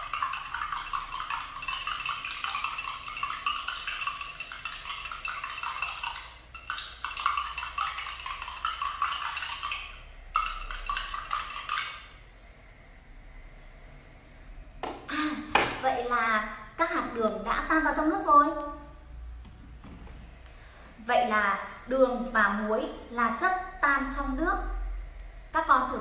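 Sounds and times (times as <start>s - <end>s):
spoon clinking against cup: 0.0s - 12.2s.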